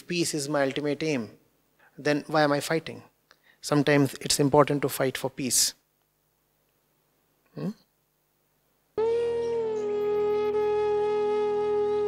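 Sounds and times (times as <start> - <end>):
flute long note: 9.0 - 12.0.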